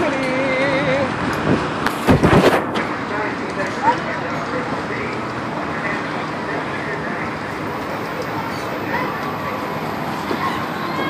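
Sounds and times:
wind rumbling on microphone: 0.0 - 4.3.

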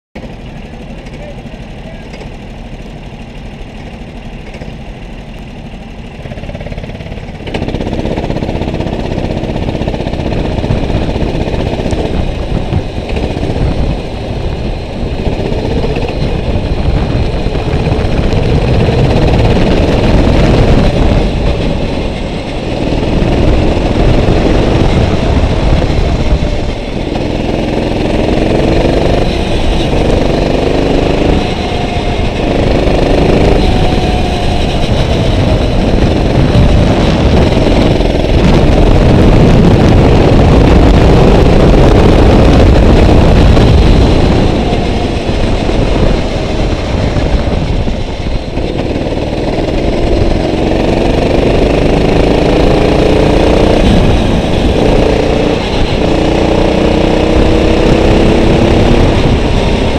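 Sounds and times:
go-kart engine revving: 0.2 - 59.9.

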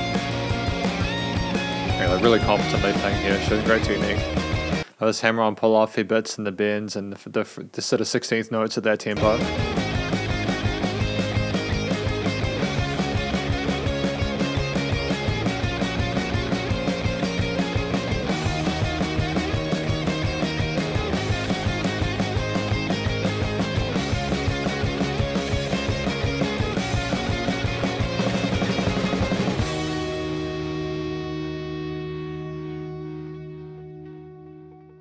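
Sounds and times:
rock song: 0.0 - 4.9, 9.2 - 34.9.

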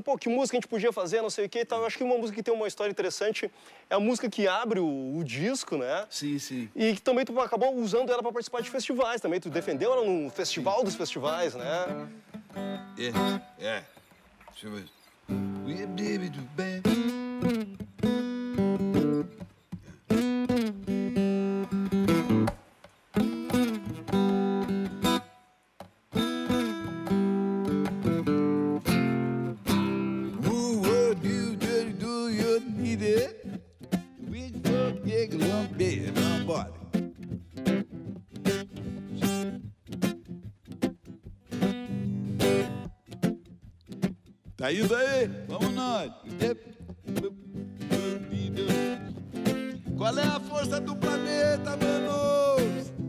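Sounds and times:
acoustic guitar chords: 9.5 - 53.0.

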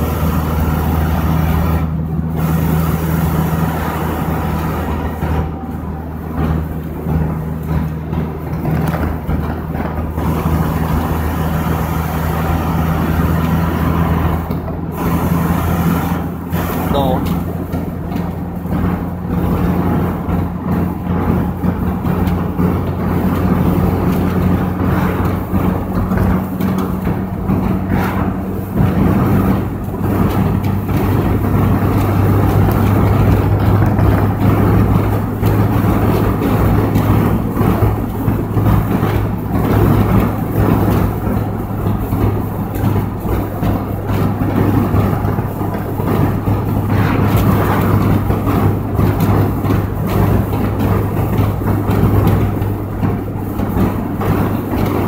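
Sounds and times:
car engine drone: 0.0 - 55.0
tyre and road rumble: 0.0 - 55.0.

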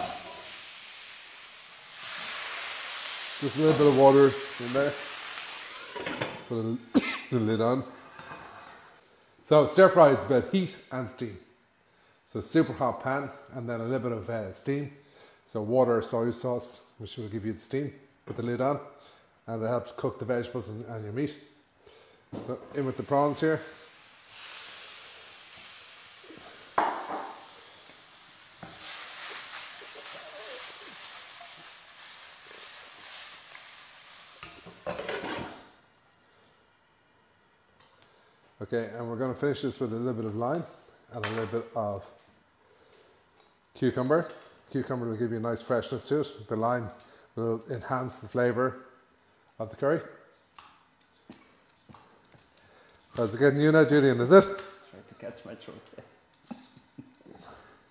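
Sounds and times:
food sizzling in a wok: 0.0 - 10.3, 11.1 - 13.5, 19.0 - 36.5
sharp knock in wok: 26.8 - 27.4.

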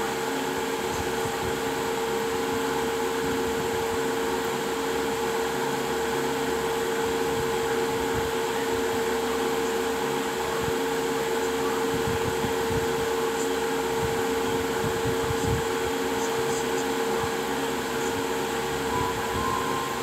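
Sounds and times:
steady machine whir: 0.0 - 20.0.

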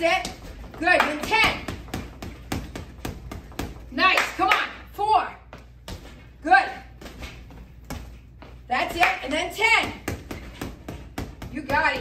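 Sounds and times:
gloves punching heavy bag: 0.0 - 4.0, 9.0 - 12.0.

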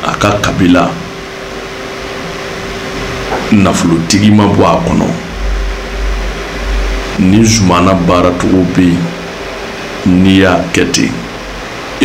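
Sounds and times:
low rumble with faint hiss: 2.0 - 12.0.

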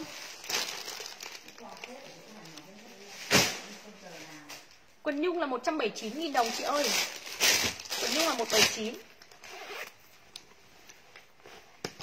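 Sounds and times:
zipper rasp: 9.4 - 10.0.

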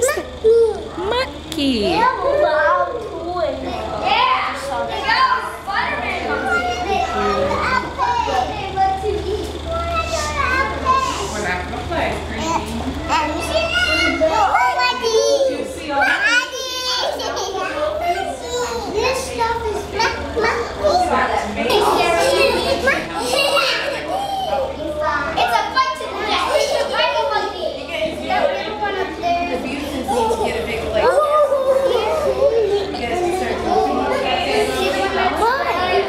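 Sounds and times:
toddlers babbling: 0.0 - 3.1, 12.3 - 27.8, 28.9 - 36.0
children chattering: 0.0 - 36.0.

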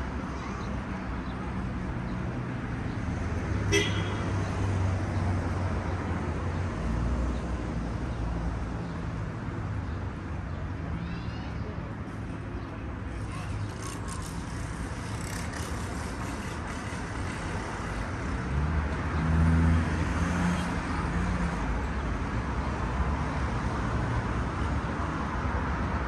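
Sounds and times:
city street traffic: 0.0 - 26.0.

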